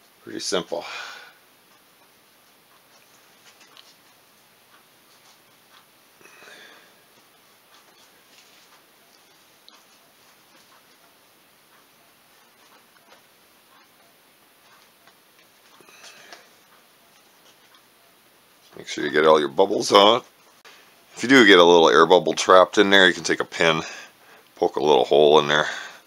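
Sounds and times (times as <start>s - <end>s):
steady background hiss: 0.0s - 26.0s.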